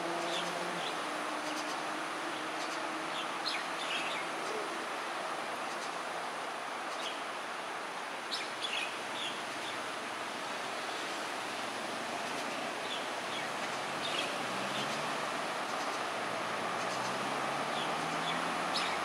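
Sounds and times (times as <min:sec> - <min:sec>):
outdoor background hiss: 0:00.0 - 0:19.0.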